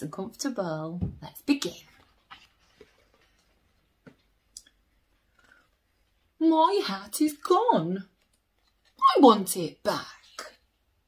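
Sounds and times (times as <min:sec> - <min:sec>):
book pages rustling: 0:01.8 - 0:06.2, 0:08.1 - 0:09.0.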